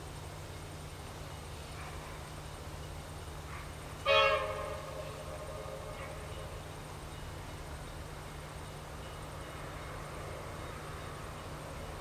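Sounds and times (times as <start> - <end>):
diesel locomotive horn blast: 4.0 - 6.6.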